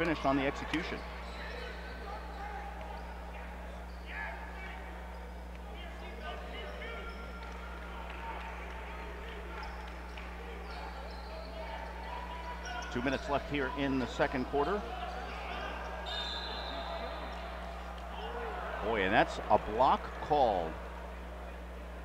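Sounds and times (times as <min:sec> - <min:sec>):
crowd talking: 0:00.0 - 0:22.0
low electrical hum: 0:00.0 - 0:22.0.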